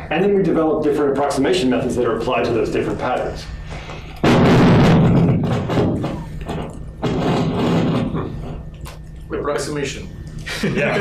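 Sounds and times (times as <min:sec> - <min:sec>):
steady low hum: 0:00.0 - 0:11.0
microphone crackling bursts: 0:04.2 - 0:08.4.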